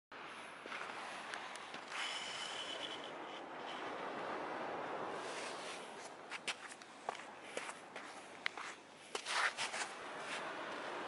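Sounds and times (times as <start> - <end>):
footsteps on sand: 5.3 - 11.0.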